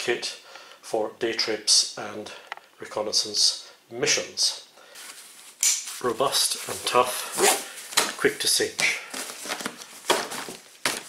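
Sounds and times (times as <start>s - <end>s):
fabric rustling and crinkling: 5.0s - 11.0s.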